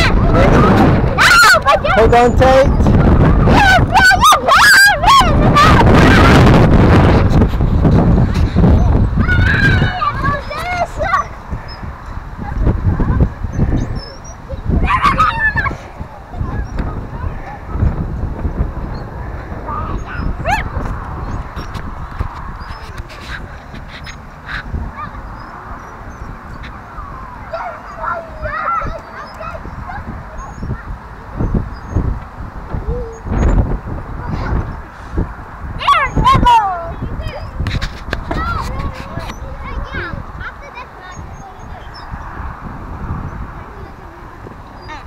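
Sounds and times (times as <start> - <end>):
wind buffeting microphone: 0.0 - 45.0
swing squealing: 8.4 - 35.0.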